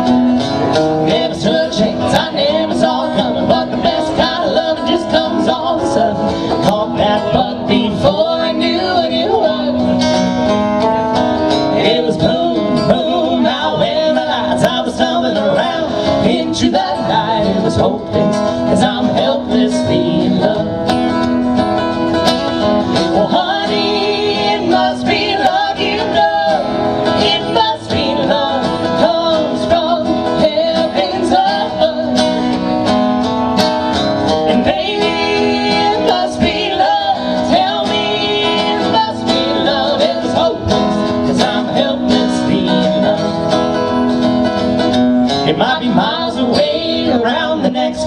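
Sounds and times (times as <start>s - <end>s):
strummed acoustic guitar: 0.0s - 48.0s
person singing: 0.7s - 10.1s, 11.5s - 21.2s, 23.0s - 32.8s, 34.3s - 43.7s, 45.3s - 48.0s.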